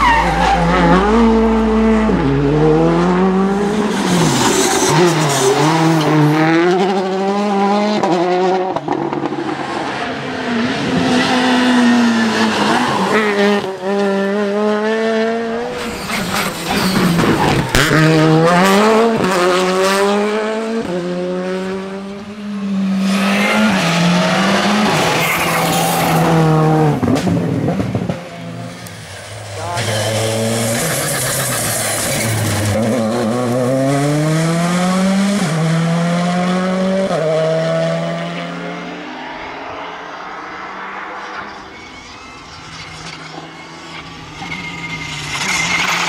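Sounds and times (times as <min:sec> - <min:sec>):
rally car engines revving: 0:00.0 - 0:46.0.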